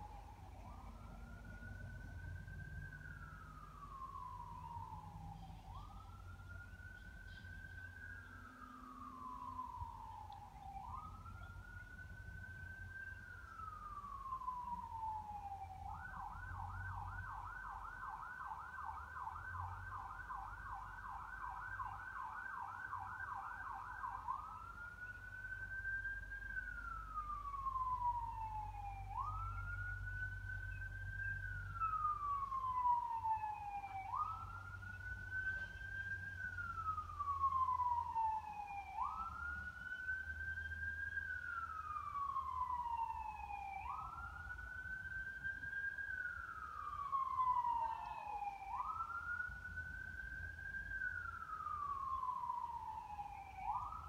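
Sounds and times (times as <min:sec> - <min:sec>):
siren wailing: 0:00.0 - 0:54.0.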